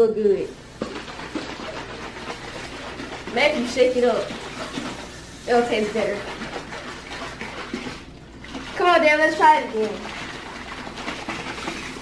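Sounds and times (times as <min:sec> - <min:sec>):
water sloshing in plastic bottle: 0:00.8 - 0:12.0.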